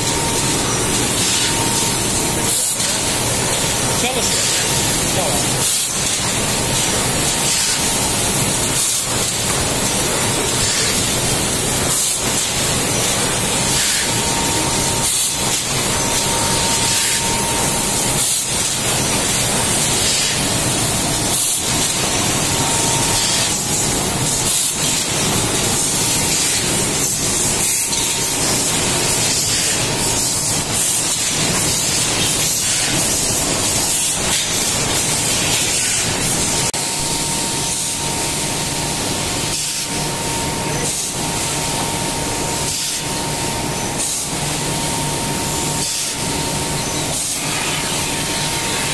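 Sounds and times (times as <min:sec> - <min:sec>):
machine air hissing: 0:00.0 - 0:48.9.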